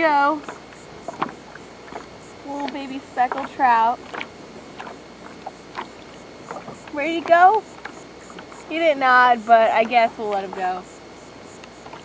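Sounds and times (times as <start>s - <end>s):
low outdoor hiss: 0.0s - 12.0s.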